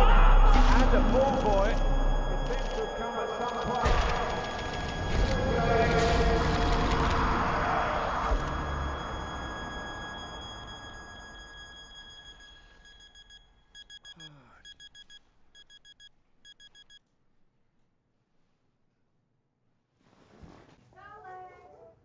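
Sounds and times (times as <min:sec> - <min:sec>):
steady high electronic tone: 0:00.0 - 0:14.3
alarm clock beeping rapidly: 0:00.0 - 0:17.0.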